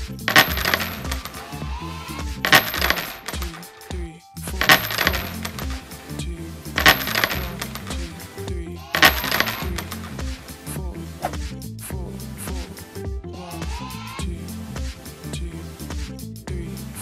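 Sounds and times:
music with steady bass line: 0:00.0 - 0:02.6, 0:05.6 - 0:06.9, 0:07.6 - 0:08.9, 0:09.7 - 0:17.0
coins dropping and jingling: 0:00.2 - 0:01.6, 0:02.4 - 0:03.9, 0:04.6 - 0:06.2, 0:06.8 - 0:08.3, 0:09.0 - 0:10.3.

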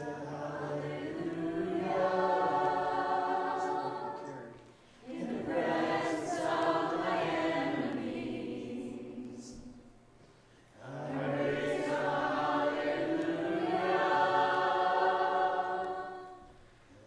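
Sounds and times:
voices singing worship song: 0:00.0 - 0:17.0.

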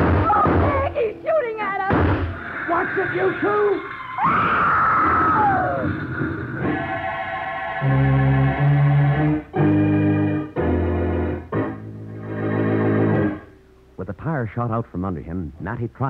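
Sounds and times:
dramatic organ chords: 0:00.0 - 0:04.5, 0:05.1 - 0:16.0
falling screech: 0:02.3 - 0:07.8.

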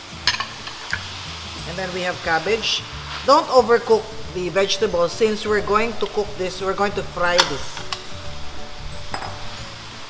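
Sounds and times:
vegetables sizzling in a pan: 0:00.0 - 0:10.0
spatulas stirring: 0:01.6 - 0:10.0.

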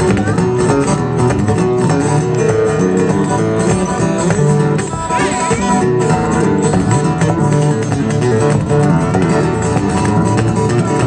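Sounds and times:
electric guitar: 0:00.0 - 0:11.0
live blues band playing: 0:00.0 - 0:11.0.

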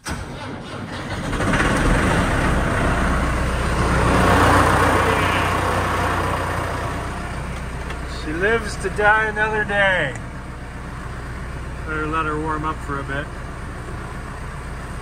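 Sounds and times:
diesel tractor engine starting: 0:00.0 - 0:15.0.

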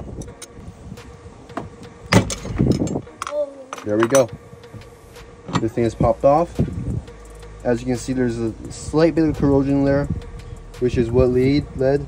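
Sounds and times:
metal tool clicking and scraping: 0:00.2 - 0:00.6.

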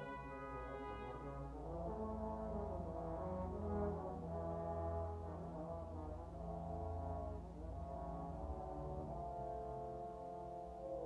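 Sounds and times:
brass ensemble holding chords: 0:00.0 - 0:11.0.

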